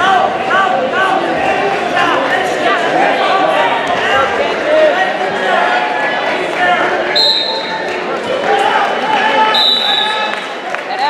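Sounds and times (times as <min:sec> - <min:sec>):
spectators shouting: 0:00.0 - 0:10.6
whistle blasts: 0:07.2 - 0:07.7, 0:09.5 - 0:10.4.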